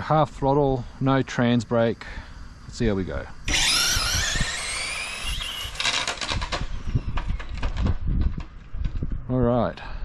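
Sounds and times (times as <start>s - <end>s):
electric motor whining: 3.4s - 7.7s.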